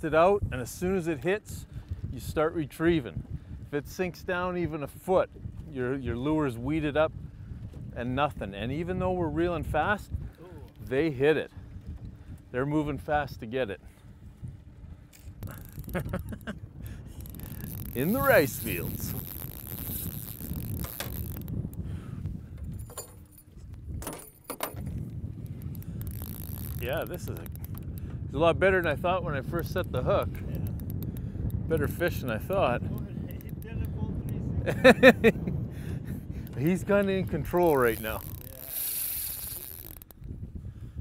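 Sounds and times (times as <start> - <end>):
low wind rumble: 0.0 - 41.0
fishing reel ticking and clicking: 15.0 - 21.9, 24.9 - 28.1, 29.6 - 34.4, 36.4 - 40.3.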